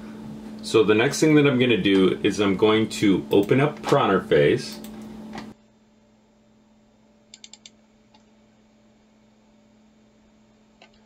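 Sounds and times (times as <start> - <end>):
faint steady hum: 0.0 - 11.0
computer mouse clicks: 7.3 - 8.3, 10.8 - 11.0.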